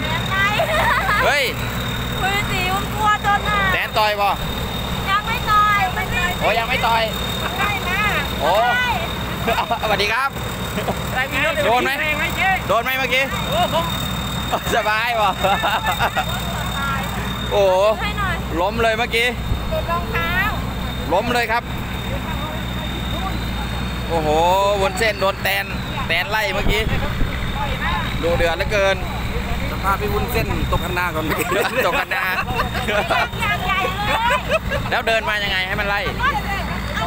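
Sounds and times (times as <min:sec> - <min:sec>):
engine droning: 0:00.0 - 0:37.0
excited voices: 0:00.0 - 0:37.0
people talking: 0:00.0 - 0:37.0.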